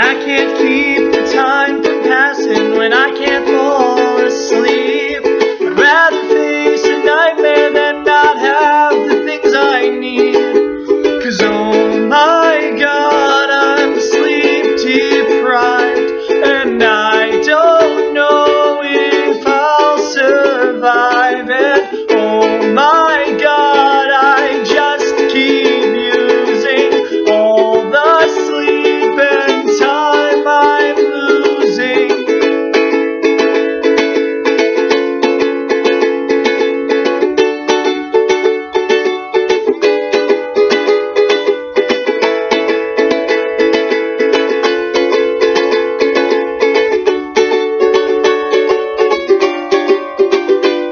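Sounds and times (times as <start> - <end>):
man singing: 0.0 - 33.9
ukulele strummed chords: 0.0 - 50.9.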